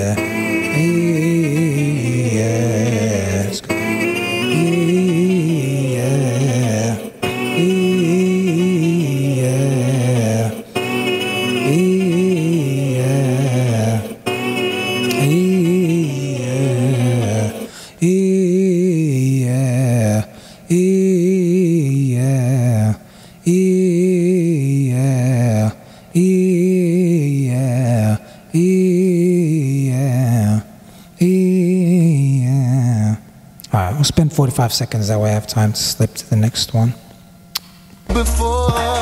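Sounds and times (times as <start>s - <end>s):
man singing vocal runs: 0.0s - 34.0s, 38.1s - 39.0s
man breathing: 17.6s - 18.0s, 20.3s - 20.7s, 23.0s - 23.4s, 25.8s - 26.2s, 28.2s - 28.5s, 30.8s - 31.2s.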